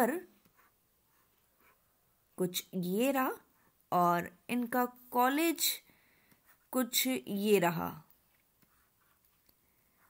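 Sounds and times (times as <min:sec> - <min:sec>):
woman speaking: 0:00.0 - 0:00.4, 0:02.4 - 0:05.9, 0:06.7 - 0:08.1
stylus scratching on screen: 0:08.2 - 0:10.0.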